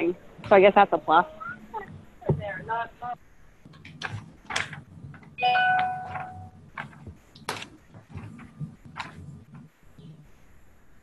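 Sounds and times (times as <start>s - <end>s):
bell-like chime: 5.4s - 6.4s.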